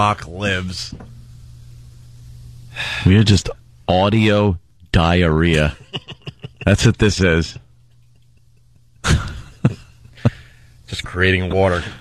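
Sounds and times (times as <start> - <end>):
steady low hum: 0.0 - 12.0
man speaking: 2.8 - 7.6, 10.9 - 12.0.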